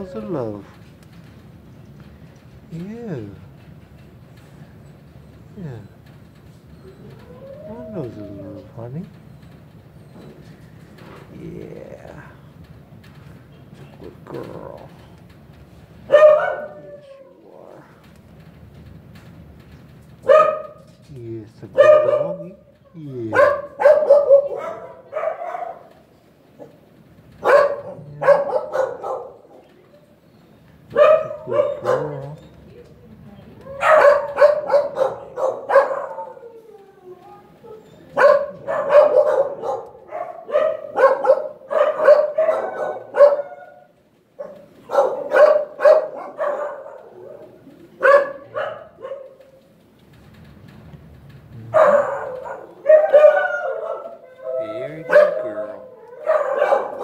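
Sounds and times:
dog barking and yipping: 16.1 - 17.3, 20.2 - 20.9, 21.8 - 22.6, 23.3 - 26.8, 27.4 - 29.7, 30.9 - 32.4, 33.7 - 36.6, 37.8 - 49.6, 51.7 - 57.0.

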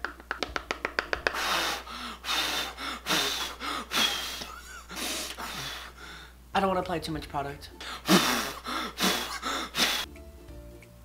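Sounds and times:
breathy puffs of air: 1.3 - 6.4, 7.8 - 10.1.

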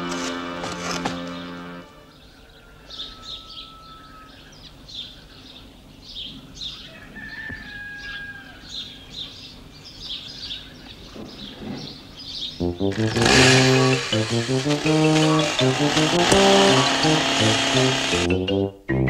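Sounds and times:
small birds chirping: 2.1 - 13.9.

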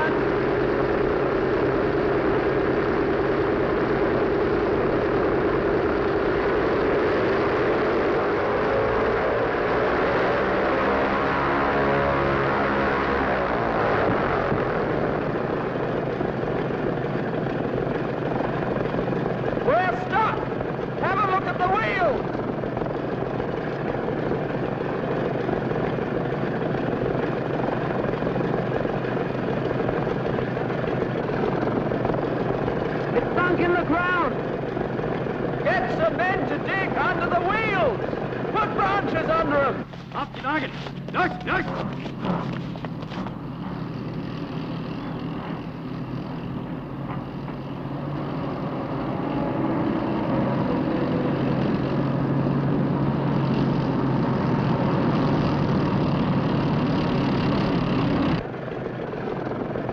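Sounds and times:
propeller plane engines droning: 0.0 - 59.9.

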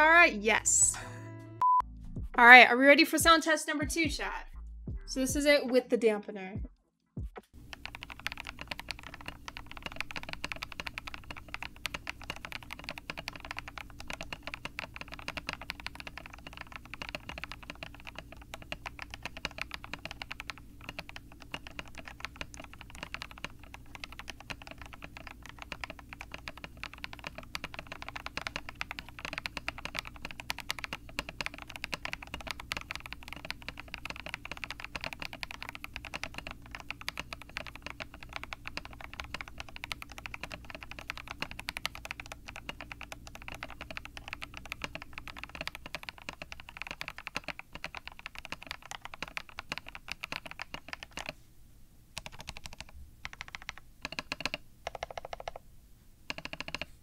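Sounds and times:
mechanical keyboard typing: 7.6 - 51.4, 52.2 - 55.6, 56.3 - 56.9.

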